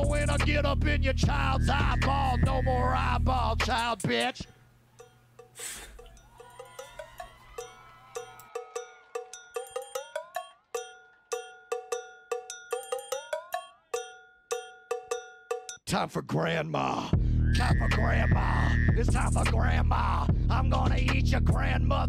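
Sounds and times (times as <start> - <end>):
pitched electronic percussion hits: 0.0 - 0.6, 1.2 - 2.8, 5.4 - 15.8, 17.6 - 21.2
low bass note: 17.2 - 19.6.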